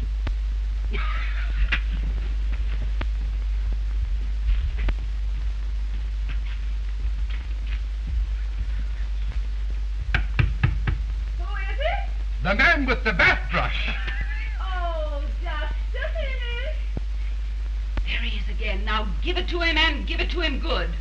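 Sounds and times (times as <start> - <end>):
soundtrack low hum: 0.0 - 21.0
knuckles knocking on wooden door: 10.1 - 11.0.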